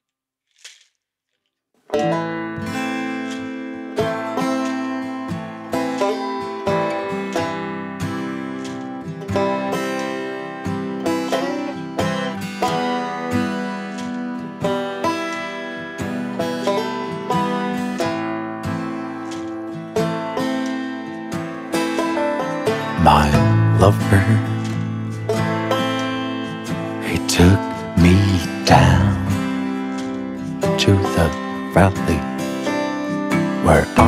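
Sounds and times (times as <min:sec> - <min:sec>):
plucked acoustic strings folk music: 0:01.9 - 0:34.0.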